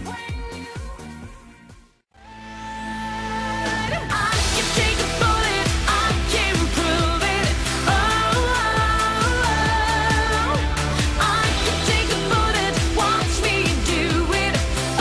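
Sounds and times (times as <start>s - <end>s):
pop song with vocals: 0.0s - 15.0s.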